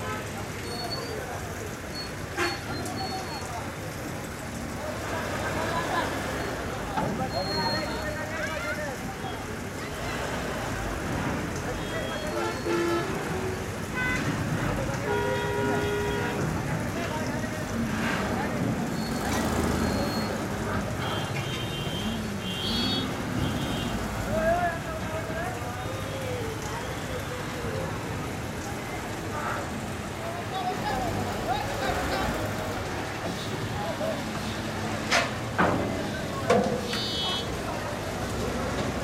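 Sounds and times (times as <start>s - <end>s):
people's voices: 0.0s - 39.0s.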